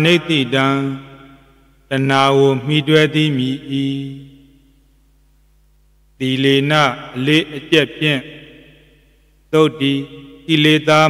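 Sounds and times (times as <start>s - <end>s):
man chanting: 0.0s - 1.3s, 1.9s - 4.4s, 6.2s - 8.4s, 9.6s - 11.0s.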